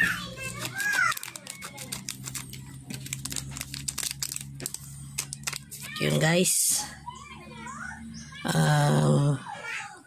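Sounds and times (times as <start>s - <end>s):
plastic bag crinkling: 0.4s - 6.0s
scissors snipping plastic: 0.5s - 5.7s.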